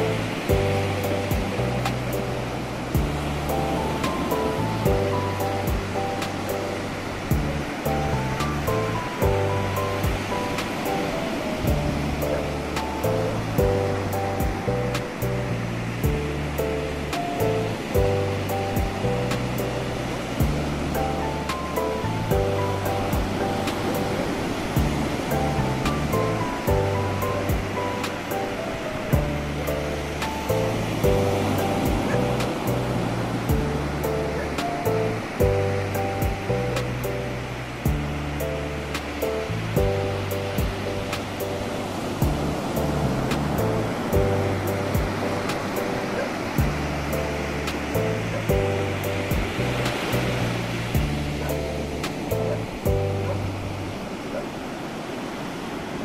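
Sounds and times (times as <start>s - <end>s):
slow piano music: 0.0s - 54.8s
ocean waves breaking: 0.0s - 56.0s.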